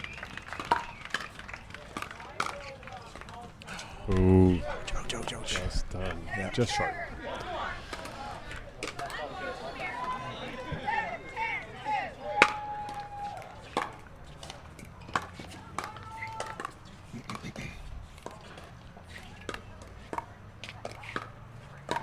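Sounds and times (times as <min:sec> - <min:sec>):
paddles hitting plastic ball: 0:12.4 - 0:17.6, 0:19.4 - 0:22.0.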